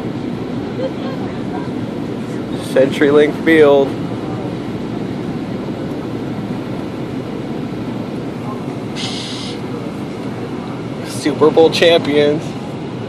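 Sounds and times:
airliner cabin engine roar: 0.0 - 13.0
short hiss: 9.0 - 9.6.

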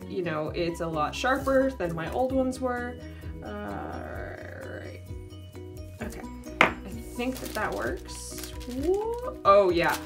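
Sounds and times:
soft background music: 0.0 - 10.0
sharp tap on a desk: 6.6 - 6.8.

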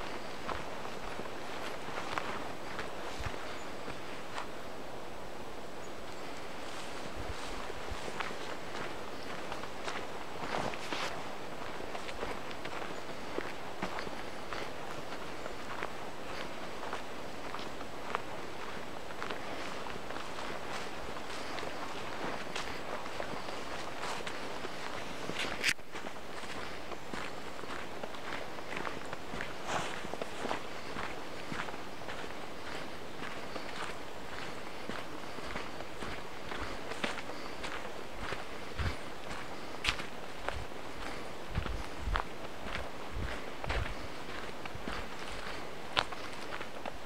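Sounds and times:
footsteps on leafy dirt track: 0.0 - 47.0.

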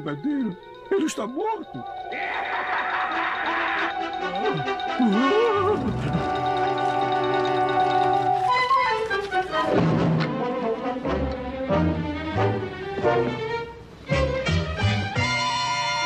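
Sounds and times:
orchestral film music with brass: 3.9 - 16.0.

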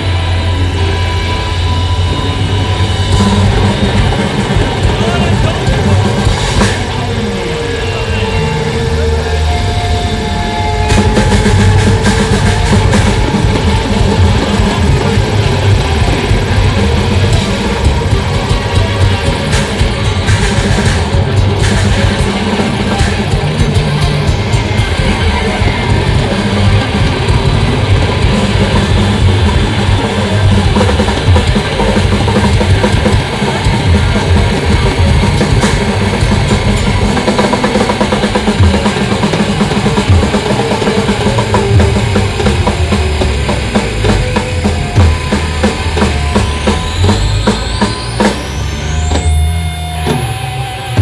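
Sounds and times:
drum hits: 0.0 - 49.4
extreme metal band playing: 0.0 - 51.0
held tone: 0.0 - 51.0
rising whining tones: 0.0 - 51.0.

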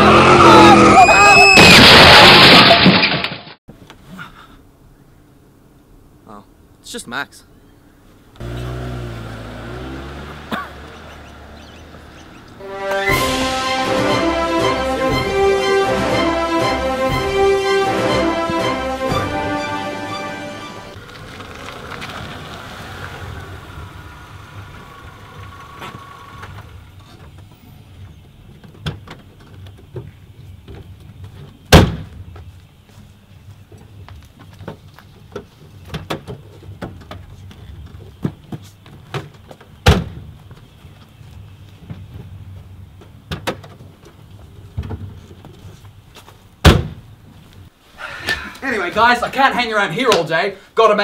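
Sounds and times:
car engine starting and driving off: 8.4 - 13.9, 19.2 - 28.3
brief sharp falling-pitch sound: 12.6 - 14.0
car door slam: 31.7 - 32.1, 46.6 - 47.0.

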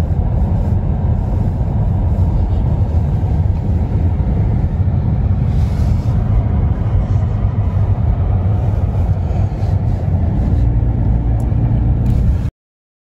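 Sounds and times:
car road and engine noise: 0.0 - 12.5.

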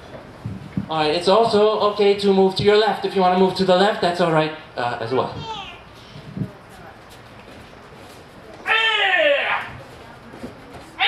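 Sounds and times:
person's high drawn-out cry: 8.6 - 9.7.

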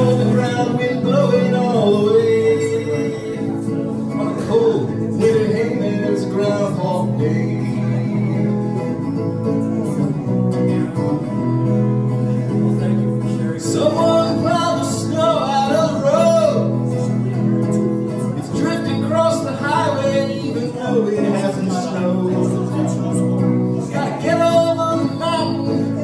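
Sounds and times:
strummed acoustic guitar: 0.0 - 26.0.

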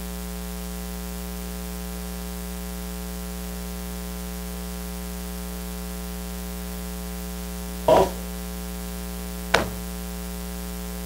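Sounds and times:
electrical mains hum: 5.6 - 11.0.

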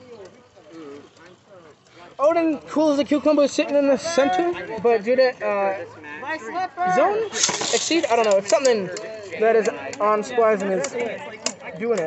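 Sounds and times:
spinning tops in plastic stadium: 6.5 - 12.0.

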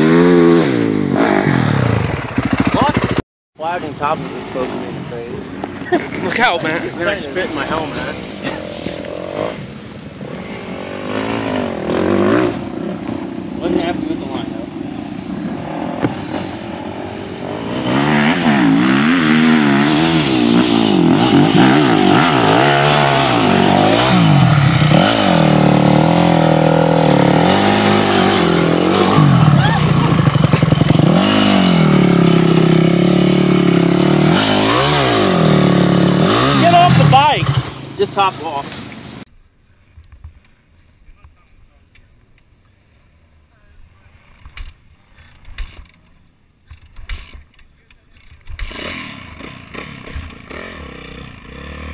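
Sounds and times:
dirt bike engine revving: 0.0 - 39.2, 48.2 - 51.9.

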